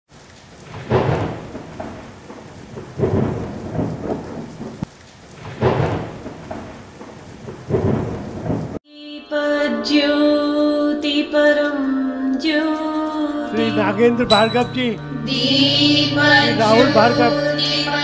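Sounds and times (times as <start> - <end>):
rain: 0.1 - 8.8
thunder rolling: 0.6 - 8.8
music: 8.9 - 18.0.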